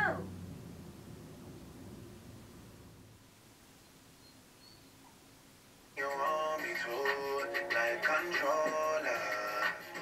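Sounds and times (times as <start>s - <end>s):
pop song from small speaker: 6.0s - 10.0s.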